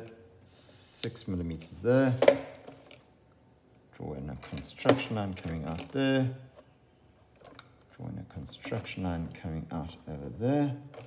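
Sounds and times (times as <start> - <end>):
person speaking: 0.0 - 2.5, 3.9 - 6.6, 7.8 - 11.0.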